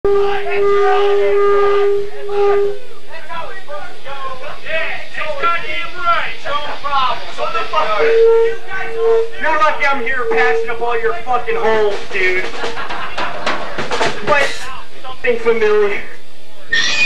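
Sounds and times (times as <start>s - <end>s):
high feedback tone: 0.1s - 3.4s, 5.2s - 12.0s
people talking: 0.1s - 17.0s.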